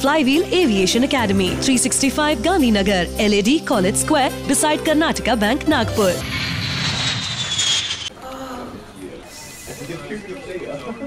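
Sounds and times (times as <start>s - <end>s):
jet engine rushing and whining: 5.8s - 8.1s.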